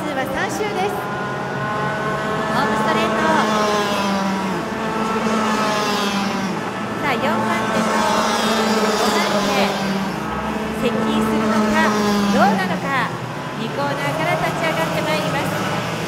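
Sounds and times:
racing kart engines passing: 0:00.0 - 0:16.0.

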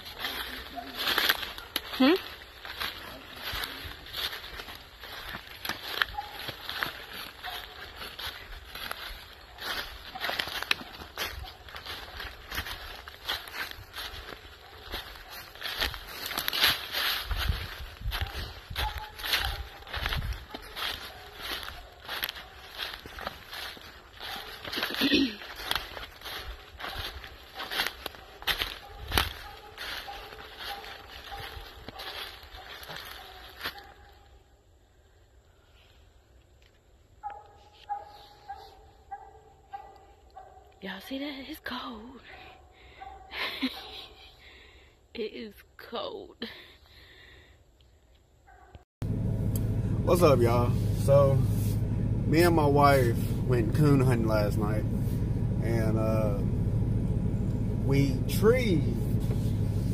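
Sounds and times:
vehicle engine hum: 0:00.0 - 0:33.7, 0:49.0 - 0:59.9
footsteps crunching through dry leaves: 0:00.0 - 0:34.3, 0:37.3 - 0:40.0, 0:49.0 - 0:59.9.

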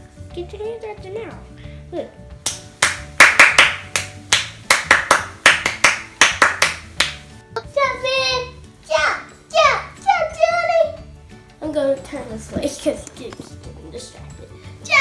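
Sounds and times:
hands clapping: 0:02.4 - 0:07.3
high-pitched child voice: 0:07.6 - 0:11.1.

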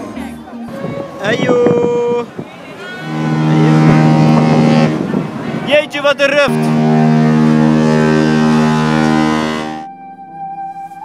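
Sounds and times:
ship horn long blast: 0:00.7 - 0:09.9.

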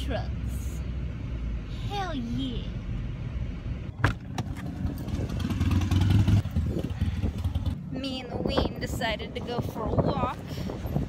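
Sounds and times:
road noise inside car: 0:00.0 - 0:11.0.

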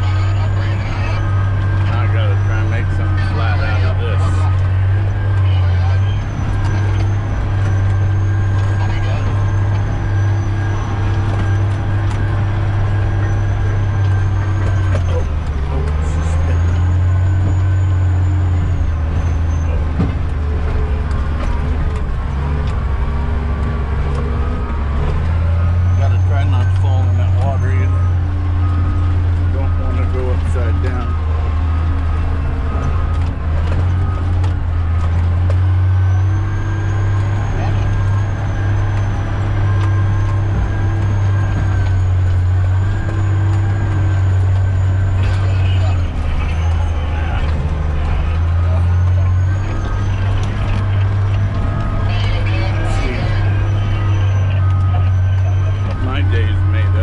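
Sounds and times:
diesel engine droning: 0:00.0 - 0:57.0.

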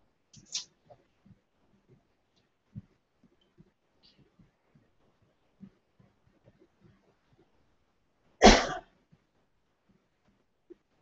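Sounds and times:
short cough: 0:08.4 - 0:08.9.

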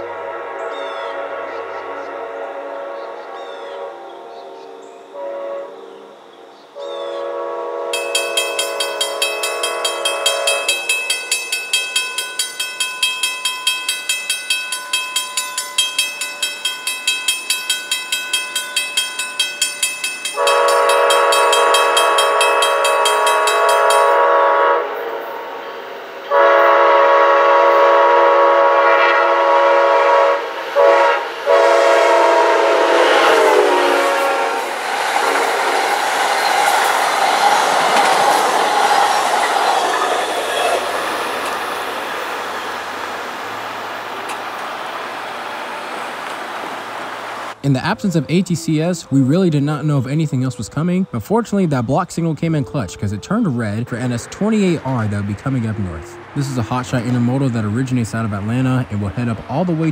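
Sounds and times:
locomotive horn blasts: 0:00.0 - 0:12.0, 0:20.2 - 0:34.7
train wheel and rail noise: 0:00.0 - 0:59.9
crossing bell ringing: 0:07.9 - 0:34.5, 0:35.6 - 0:46.0, 0:47.6 - 0:59.8.

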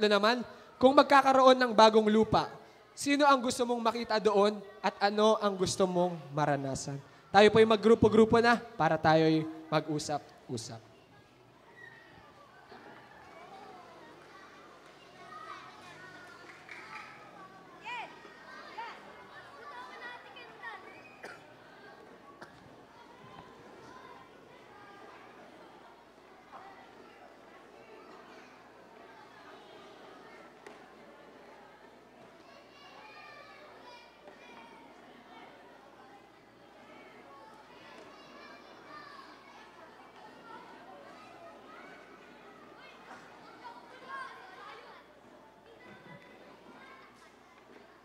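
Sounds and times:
children chattering: 0:00.0 - 0:48.0.

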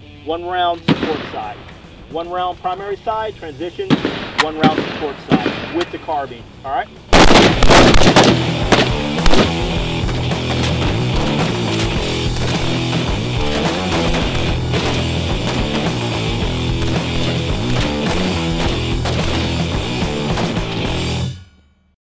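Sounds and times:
rock music with electric guitar: 0:06.4 - 0:21.5.

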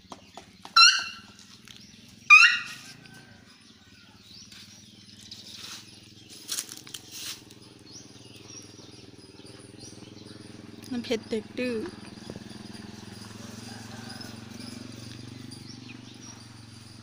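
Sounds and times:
elephant squeaking: 0:00.7 - 0:01.4, 0:02.1 - 0:03.1, 0:05.4 - 0:17.0
faint rustles: 0:04.4 - 0:07.8.

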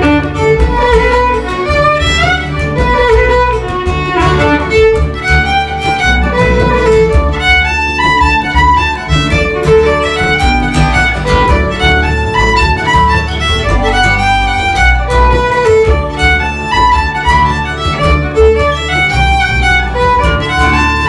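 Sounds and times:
accompaniment with steady bass: 0:00.0 - 0:21.0
fiddle playing quick tune: 0:00.0 - 0:21.0.

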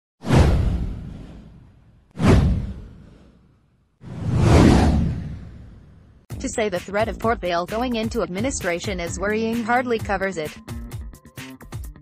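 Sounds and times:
whoosh sound effect: 0:00.2 - 0:03.4, 0:04.0 - 0:06.1.

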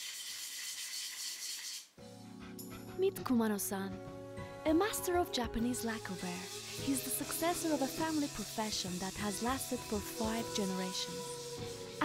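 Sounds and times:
scratchy rubbing on wooden board: 0:06.0 - 0:12.0.

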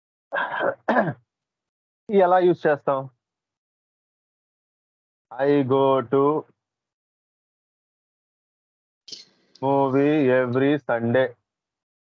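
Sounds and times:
man clearing his throat: 0:00.4 - 0:01.2.

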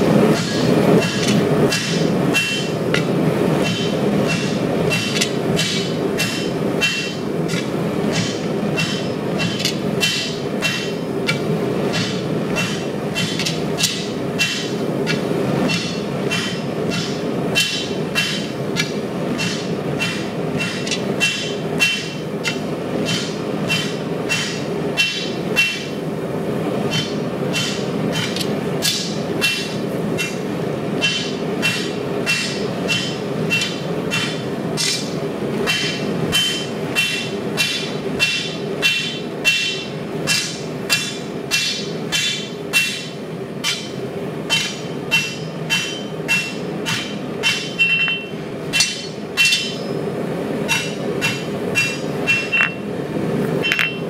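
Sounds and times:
hammer striking metal on anvil: 0:00.3 - 0:26.0, 0:26.9 - 0:30.4, 0:31.0 - 0:50.0, 0:50.7 - 0:52.8, 0:53.6 - 0:54.0.

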